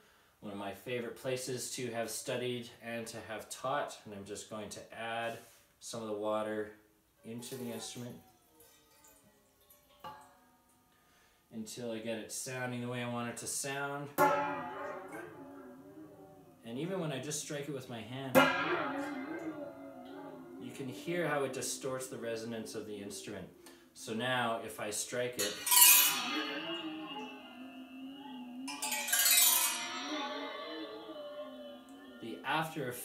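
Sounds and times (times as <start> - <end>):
waterphone struck and ringing: 14.2 - 16.4, 18.4 - 24.2, 25.3 - 33.0.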